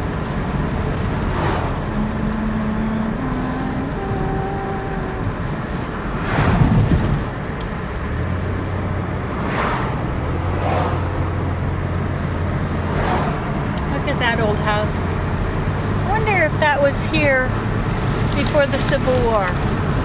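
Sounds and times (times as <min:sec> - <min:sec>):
car cabin road and engine noise: 0:00.0 - 0:20.0
oncoming vehicles rushing past: 0:00.0 - 0:20.0.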